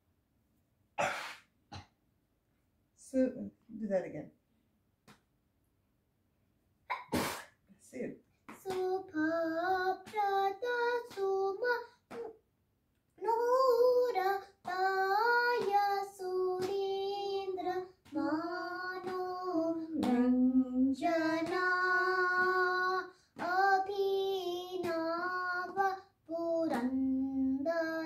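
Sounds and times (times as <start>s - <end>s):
girl singing unaccompanied: 8.5s - 12.4s, 13.2s - 28.0s.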